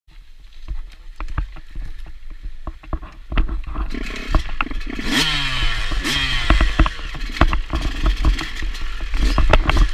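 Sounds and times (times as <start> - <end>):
dirt bike engine rumble: 0.1 - 9.9
dirt bike clattering over ruts: 0.6 - 9.9.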